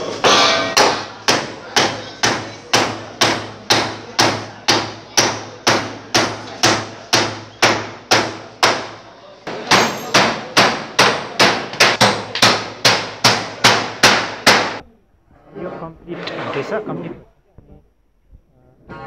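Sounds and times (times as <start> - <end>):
hammer on wood over metal: 0.0 - 14.8.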